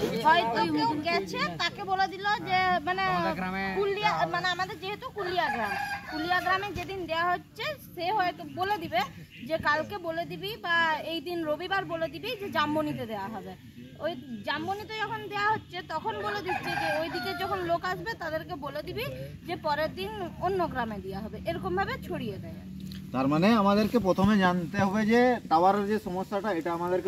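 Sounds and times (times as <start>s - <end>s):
rooster crowing: 5.3s - 6.5s, 16.2s - 17.8s.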